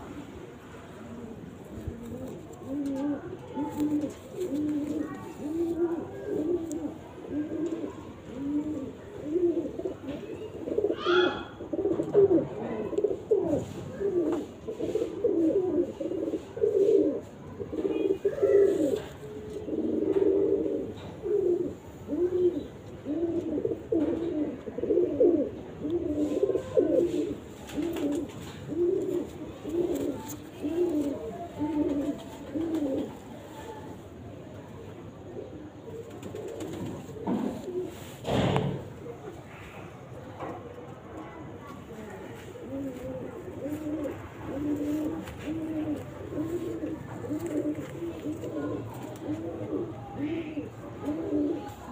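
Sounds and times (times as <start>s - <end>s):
pigeons cooing: 0.9s - 33.4s, 34.8s - 51.9s.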